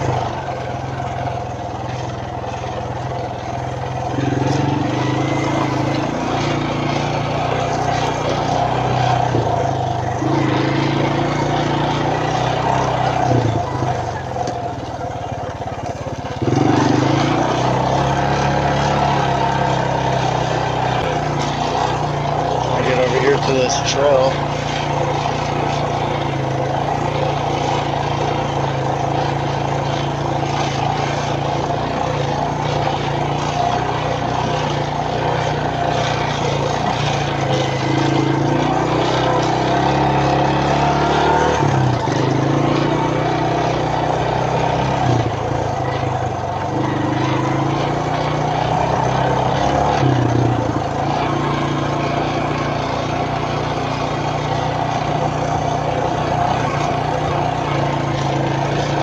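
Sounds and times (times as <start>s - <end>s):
quad bike engine running: 0.0s - 59.0s.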